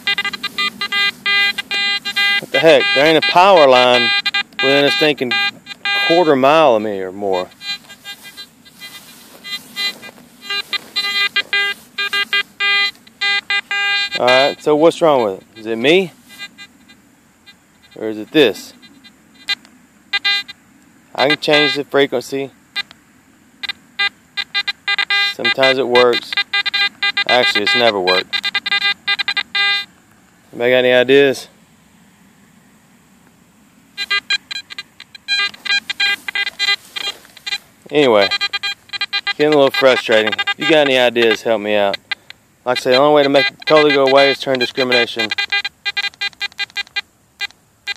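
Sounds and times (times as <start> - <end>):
metal detector short beeps: 0.0 - 20.6, 21.2 - 21.9, 23.6 - 29.9, 34.0 - 47.9.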